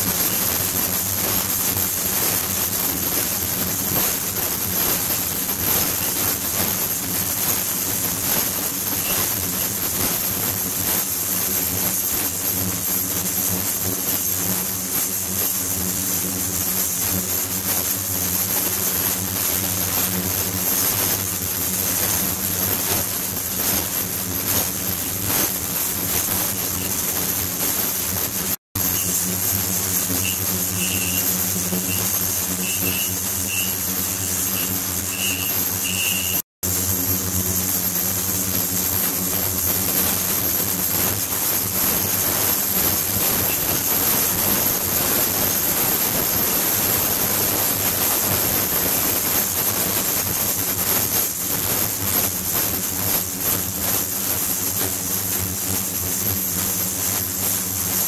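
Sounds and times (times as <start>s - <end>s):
low buzzing hum: 0.0s - 58.0s
thin high whine: 0.0s - 58.0s.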